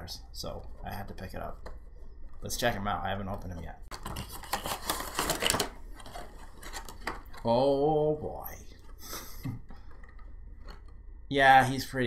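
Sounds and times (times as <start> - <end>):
cardboard box and plastic crackling: 3.9 - 7.6.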